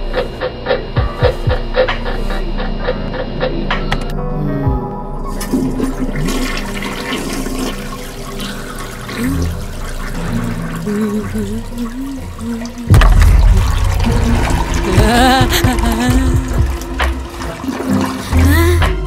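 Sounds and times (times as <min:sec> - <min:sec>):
toilet flushing: 0:05.2 - 0:19.0.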